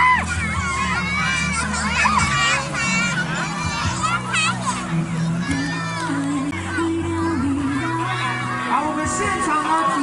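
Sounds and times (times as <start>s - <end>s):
children shouting and shrieking: 0.0s - 10.0s
crowd noise: 0.0s - 10.0s.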